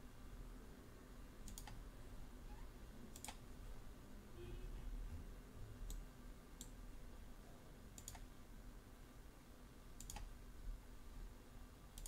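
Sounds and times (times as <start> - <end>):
faint low hum: 0.0 - 12.0
computer mouse clicking: 1.4 - 1.8, 3.1 - 3.4, 6.6 - 6.8, 8.0 - 8.3, 10.0 - 10.3.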